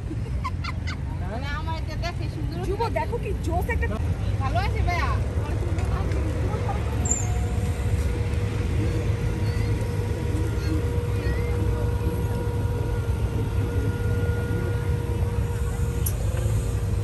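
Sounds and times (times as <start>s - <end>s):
road train driving past: 0.0s - 17.0s
steady hum: 0.0s - 17.0s
street traffic rumble: 0.0s - 17.0s
people talking: 1.1s - 17.0s.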